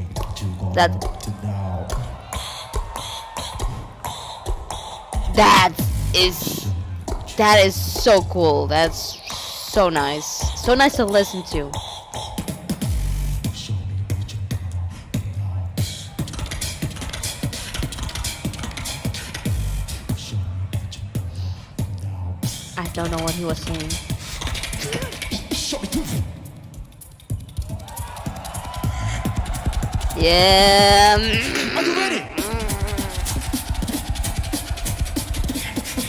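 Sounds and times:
beatboxing: 0.0 - 36.0.

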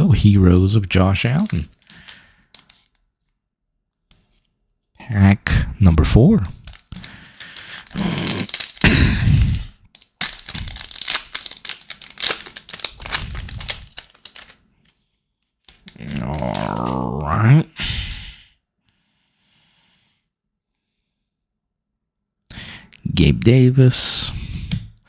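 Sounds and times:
card pack wrapper crinkling and tearing: 0.8 - 3.0, 6.4 - 17.3.

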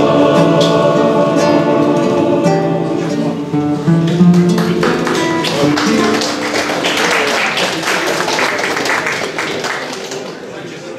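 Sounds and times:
group singing with acoustic guitar: 0.0 - 6.6
applause: 4.3 - 10.9.

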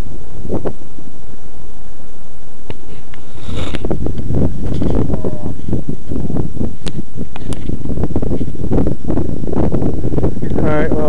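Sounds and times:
wind buffeting microphone: 0.0 - 1.0, 2.7 - 11.0.

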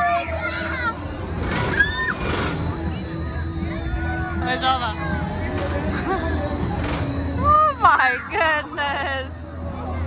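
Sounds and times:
children calling and shouting: 0.0 - 10.0
crowd chatter: 0.0 - 10.0.

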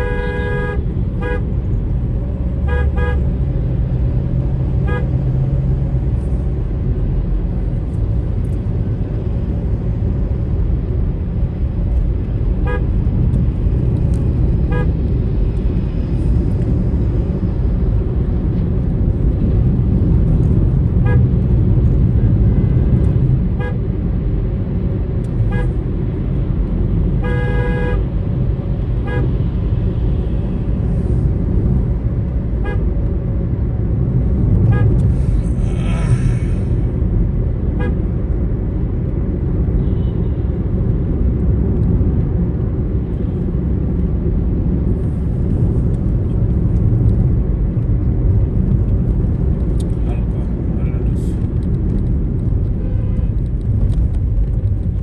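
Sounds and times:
car horn toots: 0.0 - 1.5, 2.6 - 3.3, 14.7 - 14.9, 27.2 - 28.0
car engine and road rumble: 0.0 - 55.0.

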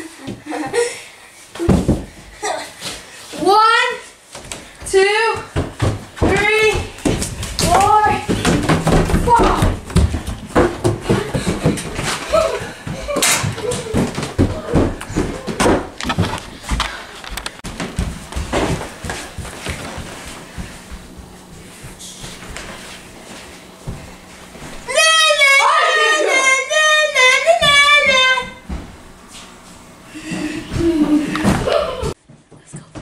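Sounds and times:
footsteps: 4.3 - 25.6, 26.4 - 33.0
child shouting: 24.9 - 28.6
children's voices: 24.9 - 28.6.

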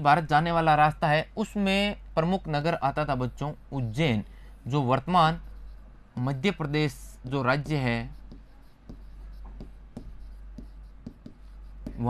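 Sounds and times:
steady low hum: 0.0 - 12.0
pen tapping and scratching on board: 7.2 - 12.0.

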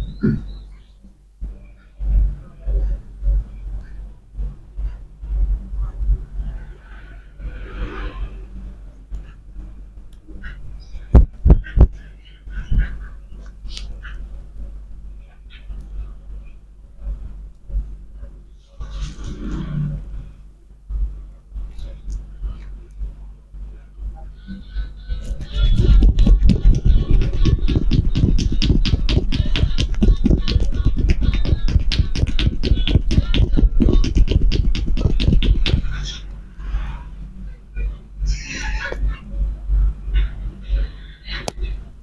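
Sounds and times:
dull thumps of head massage: 25.4 - 35.9.

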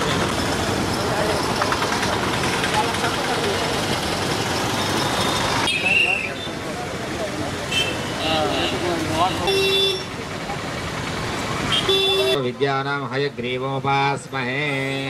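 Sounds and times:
traffic hum: 0.0 - 15.0
people talking: 5.7 - 10.8.

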